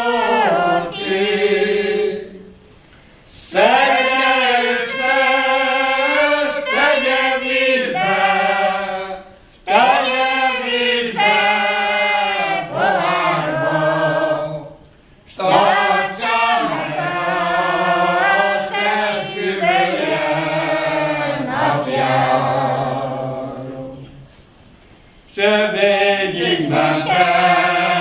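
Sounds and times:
group singing unaccompanied: 0:00.0 - 0:02.7, 0:03.3 - 0:24.4, 0:25.3 - 0:28.0.

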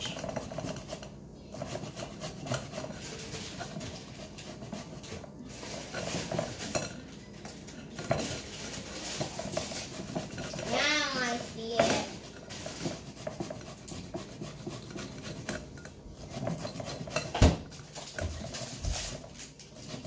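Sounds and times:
zucchini grating rasps: 0:00.0 - 0:20.0.

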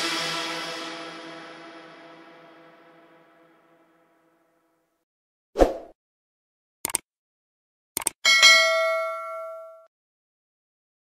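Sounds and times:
mouse clicks: 0:06.8 - 0:07.0, 0:08.0 - 0:08.2
bright bell ding: 0:08.3 - 0:09.9.

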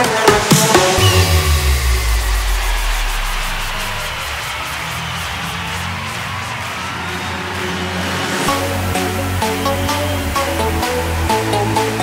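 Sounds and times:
rising synth sweep: 0:00.5 - 0:11.2
low held synth tones: 0:01.0 - 0:04.4
deep bass note sliding down: 0:01.0 - 0:05.0.

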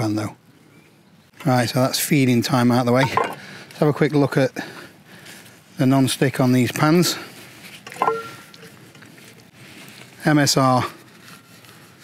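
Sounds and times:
quiet outdoor background: 0:00.0 - 0:12.0.

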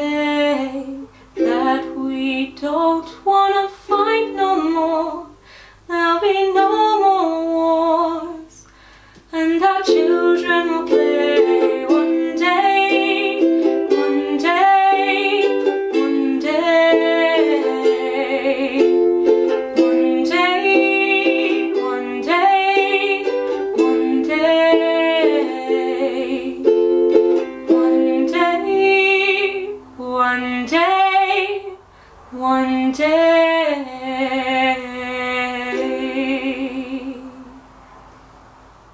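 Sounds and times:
ukulele playing: 0:00.0 - 0:05.4, 0:06.3 - 0:08.4, 0:09.4 - 0:31.8, 0:33.5 - 0:37.7
woman singing wordless melody: 0:00.0 - 0:37.8.

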